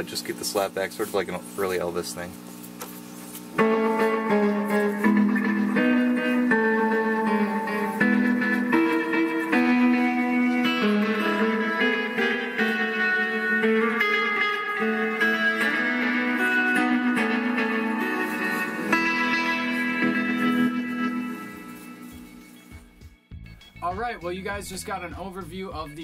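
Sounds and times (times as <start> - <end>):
electric guitar with tape echo: 3.5 - 23.3.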